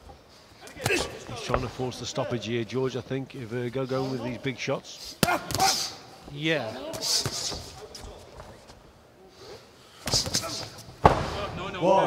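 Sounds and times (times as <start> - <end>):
boxing gloves landing punches: 0.8 - 1.6, 5.2 - 5.9, 10.0 - 11.4.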